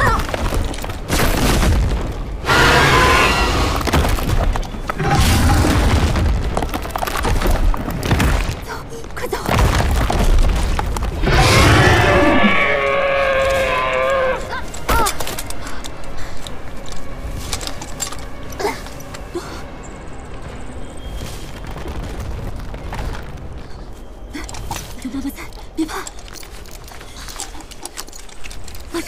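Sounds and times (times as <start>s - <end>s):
dramatic orchestral score: 0.0s - 29.0s
booming impacts and crashes: 0.2s - 8.7s, 9.4s - 13.8s
woman speaking: 8.6s - 9.6s, 24.4s - 26.2s.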